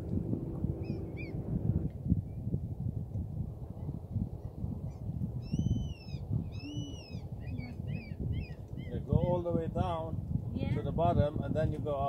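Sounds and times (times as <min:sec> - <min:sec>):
steady low rumble: 0:00.0 - 0:12.0
bird calling: 0:00.8 - 0:01.4, 0:04.9 - 0:09.3.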